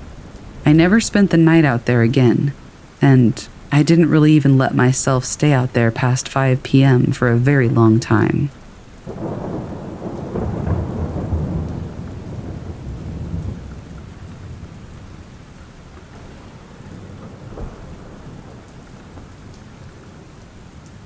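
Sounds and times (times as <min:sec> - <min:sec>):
steady rain falling: 0:00.0 - 0:21.0
thunder rumbling: 0:07.2 - 0:21.0.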